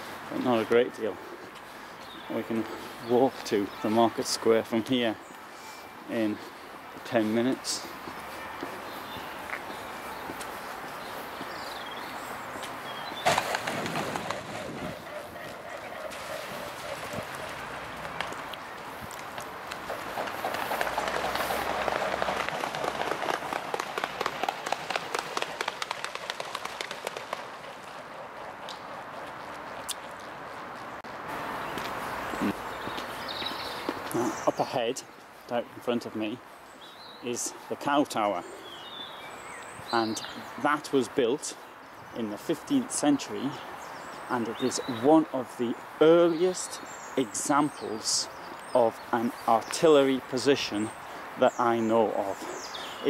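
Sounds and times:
outdoor background noise: 0.0 - 53.0
wings beating: 13.2 - 18.5, 19.4 - 28.1.

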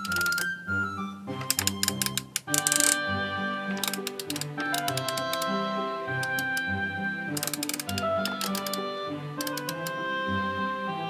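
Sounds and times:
wooden gear wheels clicking: 0.0 - 0.6, 1.3 - 10.0
background music: 0.0 - 11.0.

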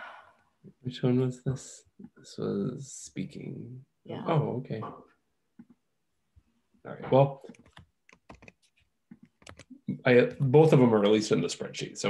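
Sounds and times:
keyboard typing: 7.5 - 9.8.

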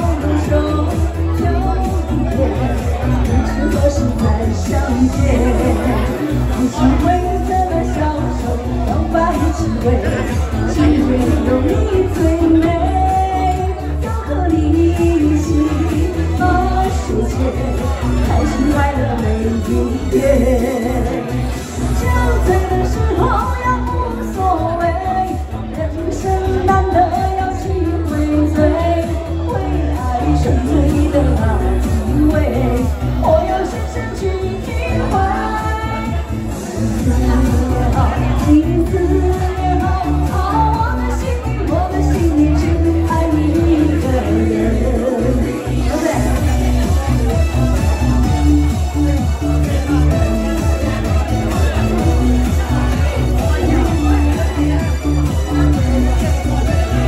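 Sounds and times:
electronic dance music: 0.0 - 57.0
karaoke backing track: 0.0 - 57.0
woman singing into a microphone: 0.0 - 57.0.

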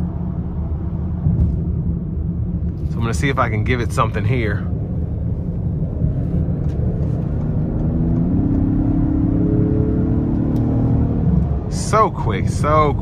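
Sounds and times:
road rumble: 0.0 - 13.0
car engine accelerating: 4.7 - 13.0.

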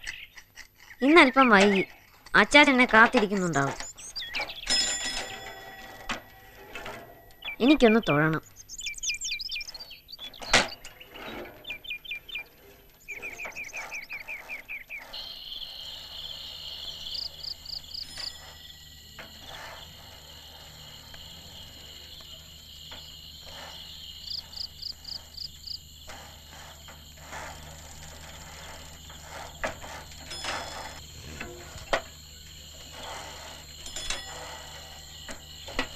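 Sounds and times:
crickets trilling: 11.1 - 35.9
quick cricket chirps: 13.1 - 35.9.

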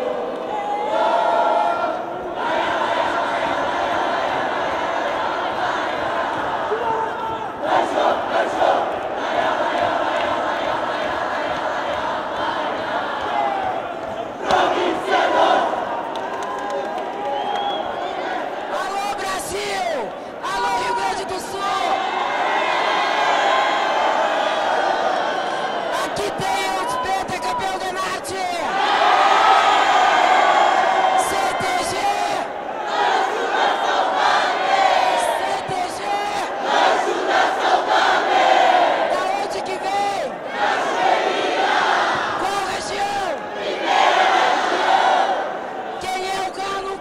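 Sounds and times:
crowd shouting and cheering: 0.0 - 47.0.

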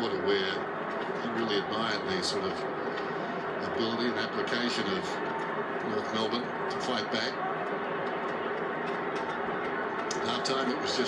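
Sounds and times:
stadium crowd roar: 0.0 - 11.0.

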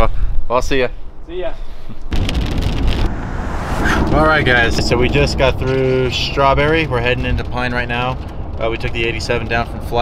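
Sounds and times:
wind rumbling on microphone: 2.1 - 10.0.

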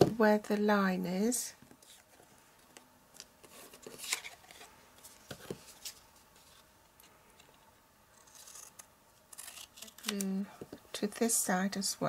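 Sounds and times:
scissors cutting cardstock: 8.2 - 10.3.

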